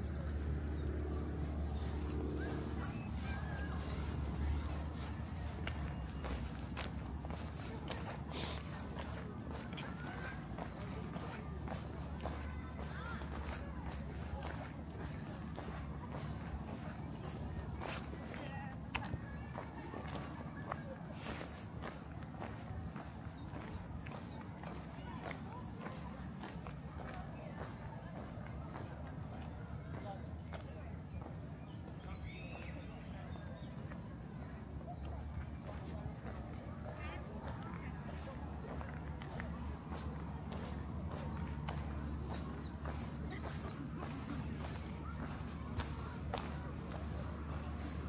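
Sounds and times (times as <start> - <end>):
faint distant voices: 0.0 - 48.0
footsteps on a footpath: 0.0 - 48.0.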